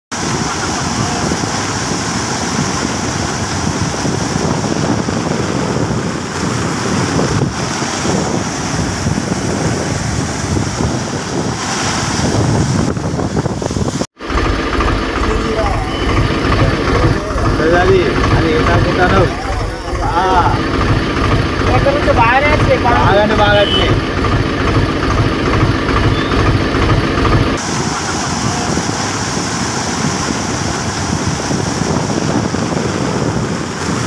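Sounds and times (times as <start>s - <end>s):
floodwater rushing: 0.1s - 34.0s
low steady rumble: 12.9s - 33.6s.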